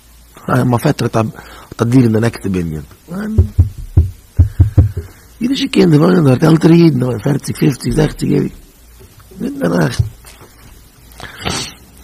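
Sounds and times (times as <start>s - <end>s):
low thumps: 3.3s - 5.2s, 7.8s - 10.4s.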